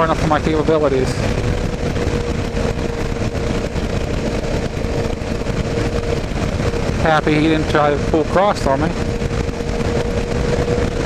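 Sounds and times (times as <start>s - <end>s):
motorcycle engine cruising: 0.0s - 11.0s
steady mid-pitched hum: 0.0s - 11.0s
wind rush on helmet: 0.0s - 11.0s.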